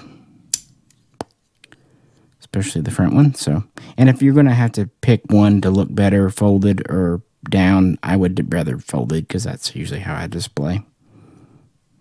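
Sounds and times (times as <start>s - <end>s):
sharp click: 0.5s - 1.0s.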